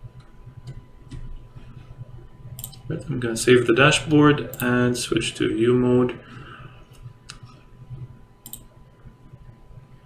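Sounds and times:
computer mouse clicking: 2.6 - 2.8, 6.9 - 8.7.

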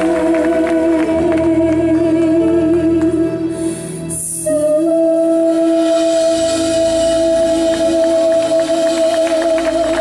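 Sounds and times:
band accompaniment: 0.0 - 10.0
women singing a duet: 0.0 - 10.0.

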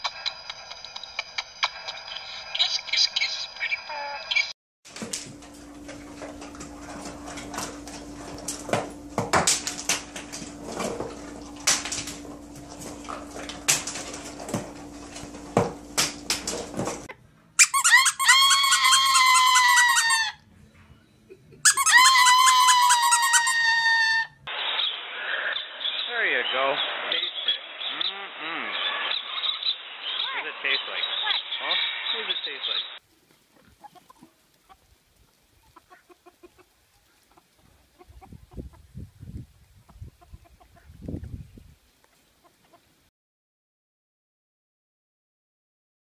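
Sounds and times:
parrot high calls: 17.6 - 20.4, 21.6 - 24.4.

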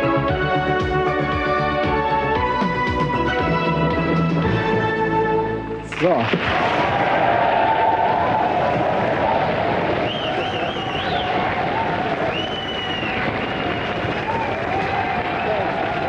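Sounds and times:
audience applauding and cheering: 5.9 - 16.0.

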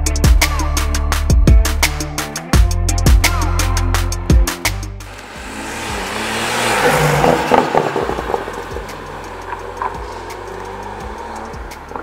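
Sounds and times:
car engine accelerating: 3.4 - 12.0.

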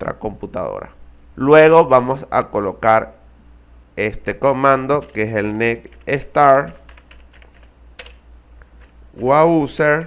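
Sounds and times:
computer keyboard typing: 4.9 - 9.0
sharp keyboard click: 5.0 - 5.3, 6.0 - 8.2.

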